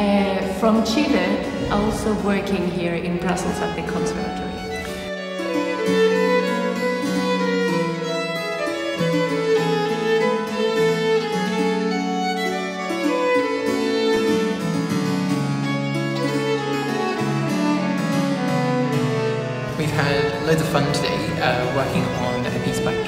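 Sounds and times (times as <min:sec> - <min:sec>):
violin melody: 0:00.6 - 0:23.0
harpsichord accompaniment: 0:01.0 - 0:23.0.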